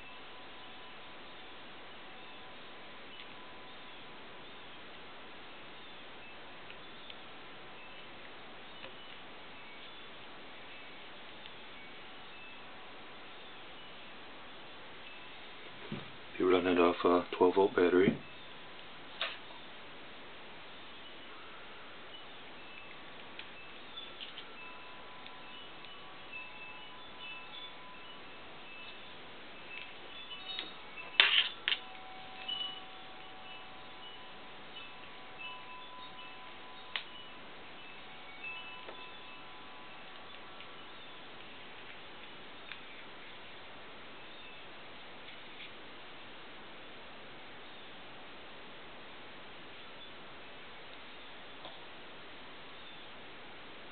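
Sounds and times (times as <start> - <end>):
faint ringing tones: 0.0 - 53.9.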